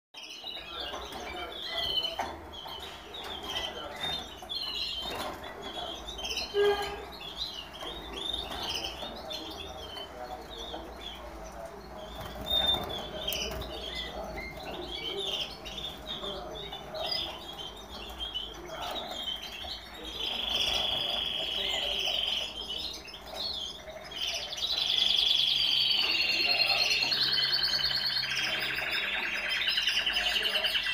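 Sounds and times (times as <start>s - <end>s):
canaries chirping: 0.2s - 30.9s
canary song trills: 0.2s - 30.9s.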